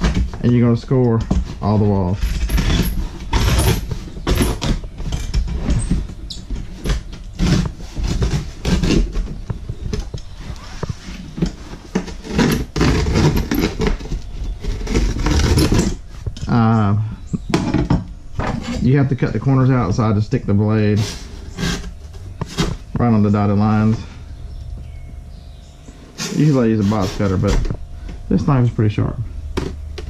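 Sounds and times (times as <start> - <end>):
blade scraping cardboard: 6.8 - 16.0, 21.0 - 22.8, 26.2 - 27.6.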